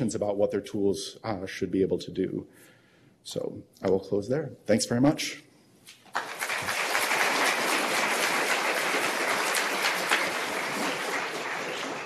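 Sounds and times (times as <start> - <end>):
audience applauding: 6.1 - 12.0.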